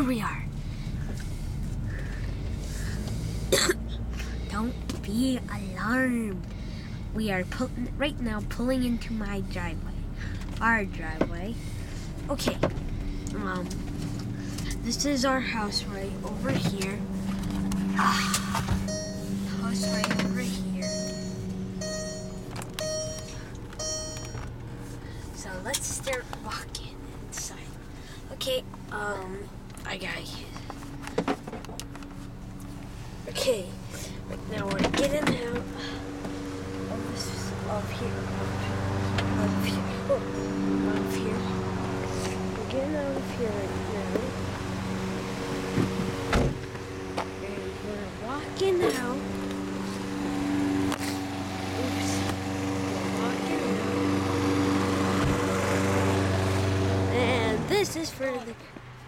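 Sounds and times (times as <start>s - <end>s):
low steady hum: 0.0s - 44.3s
lawn mower engine droning: 8.1s - 29.8s, 30.6s - 58.3s
car warning chime: 18.8s - 24.6s.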